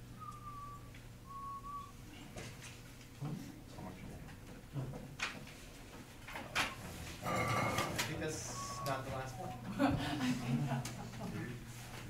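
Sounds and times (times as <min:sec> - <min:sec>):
low steady hum: 0:00.0 - 0:12.0
person whistling: 0:00.1 - 0:02.0, 0:08.5 - 0:09.4.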